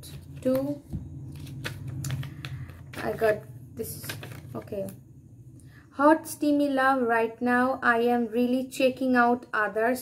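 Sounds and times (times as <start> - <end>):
paper cards clicking and rustling: 0.0 - 5.0.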